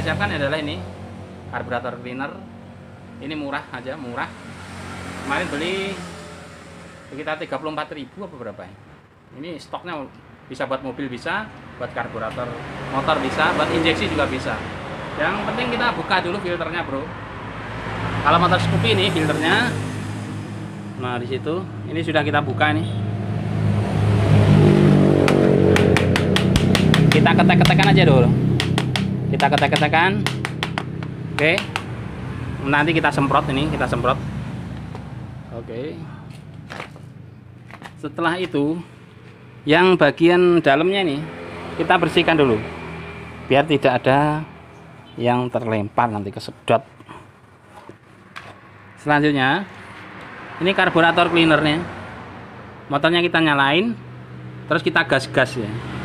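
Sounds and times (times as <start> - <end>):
vehicle engine running: 24.9 - 37.9.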